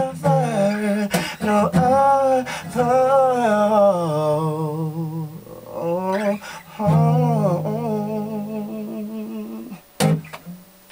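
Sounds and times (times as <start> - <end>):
man singing held note: 0.0 - 9.8.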